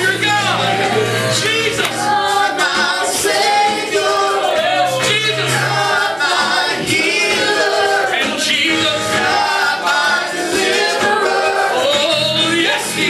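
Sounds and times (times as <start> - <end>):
gospel choir singing: 0.0 - 13.0
instrumental backing with bass: 0.0 - 13.0.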